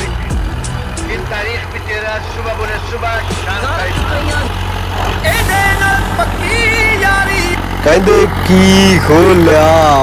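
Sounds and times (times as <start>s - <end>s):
tractor diesel engine running: 0.0s - 10.0s.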